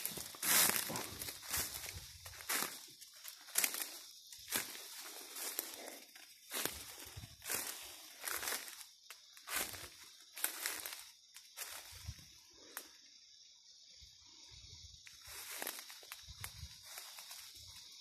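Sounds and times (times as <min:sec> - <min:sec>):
footsteps crunching dry leaves: 0:00.0 - 0:12.1, 0:15.2 - 0:17.9.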